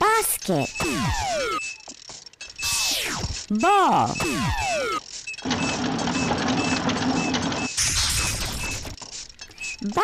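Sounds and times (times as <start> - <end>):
mechanical whirring hum: 0.4 - 10.0.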